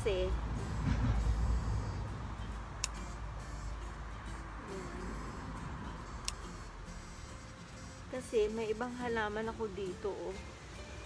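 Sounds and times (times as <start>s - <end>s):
pruning shears click: 2.7s - 3.2s, 6.2s - 6.8s.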